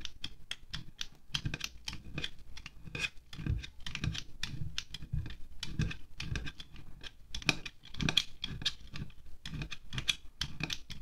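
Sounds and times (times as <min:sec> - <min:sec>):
knife chopping wax on glass: 0:00.0 - 0:11.0.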